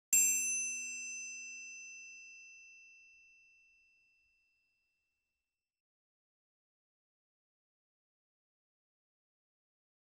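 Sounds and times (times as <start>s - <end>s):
bright metallic chime ringing: 0.1s - 3.9s.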